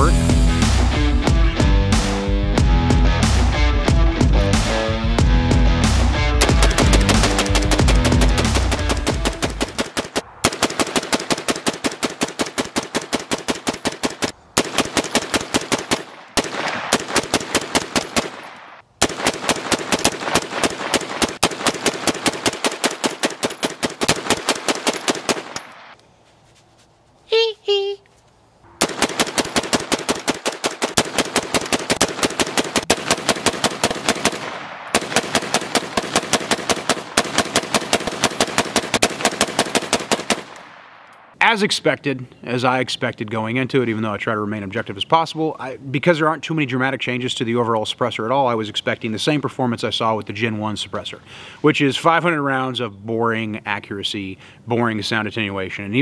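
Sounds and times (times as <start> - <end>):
suppressed rifle rapid fire: 6.4 - 26.0, 28.8 - 41.1.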